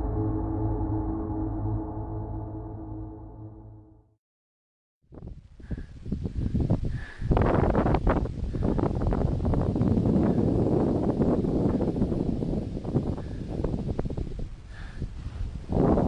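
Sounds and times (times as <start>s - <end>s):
wind buffeting microphone: 5.1s - 16.0s.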